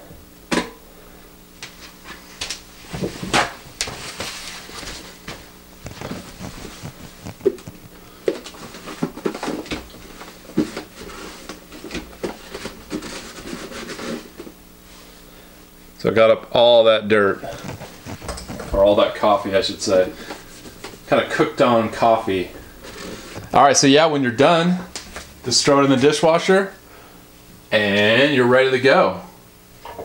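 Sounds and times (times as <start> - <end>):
paper towel scrubbing plastic: 1.7 - 15.2, 16.6 - 25.3.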